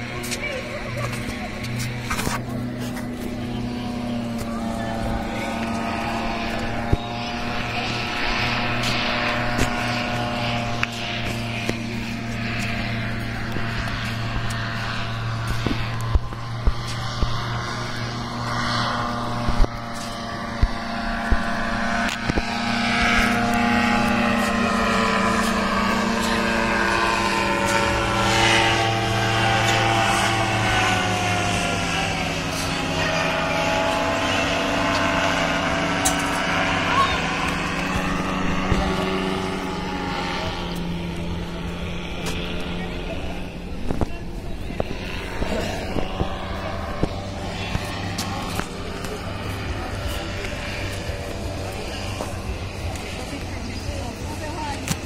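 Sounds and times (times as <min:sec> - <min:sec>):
paramotor propeller engine droning: 0:00.0 - 0:55.0.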